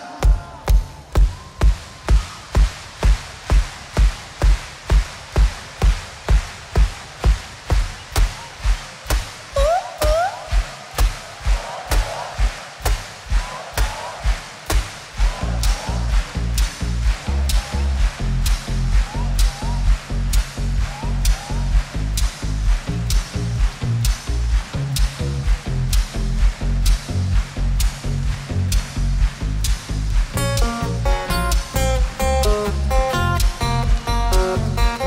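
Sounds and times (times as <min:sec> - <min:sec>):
dance beat: 0:00.0 - 0:35.0
deep bass line: 0:15.2 - 0:35.0.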